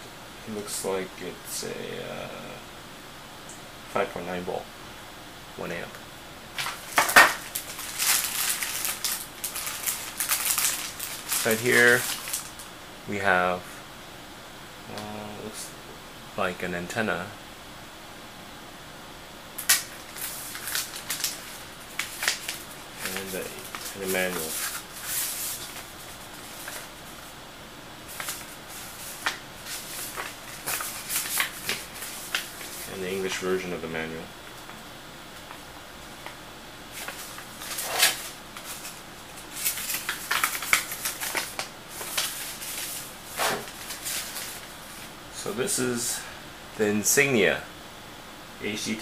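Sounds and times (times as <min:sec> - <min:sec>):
paper rustling: 0:06.6 - 0:12.7, 0:19.6 - 0:27.3, 0:28.1 - 0:33.4, 0:36.9 - 0:45.1
plastic bag crinkling: 0:06.6 - 0:12.7, 0:19.6 - 0:27.3, 0:28.0 - 0:33.4, 0:36.9 - 0:45.1.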